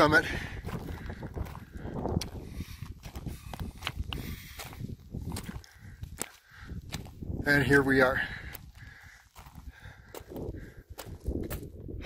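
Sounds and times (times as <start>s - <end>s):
footsteps crunching on gravel: 0.0s - 11.9s.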